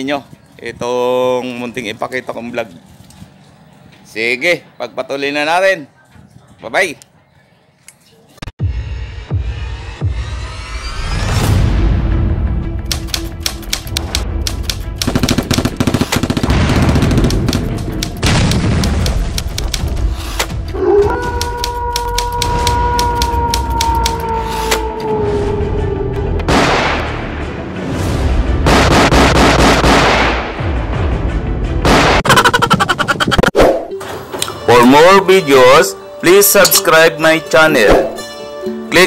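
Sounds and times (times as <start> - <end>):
music: 8.6 - 33.2, 33.8 - 39.0
crackling blast: 15.0 - 20.2, 26.5 - 30.9, 31.8 - 32.4
glitchy crackling hits: 15.2 - 20.1.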